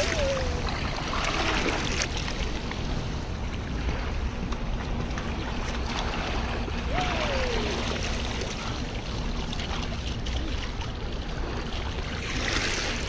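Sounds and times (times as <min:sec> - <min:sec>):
sea water splashing: 0:00.0 - 0:13.0.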